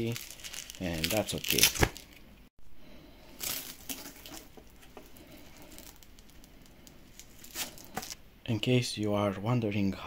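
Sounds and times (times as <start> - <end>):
velcro rustling and crackling: 0.0 - 2.2, 3.4 - 8.2.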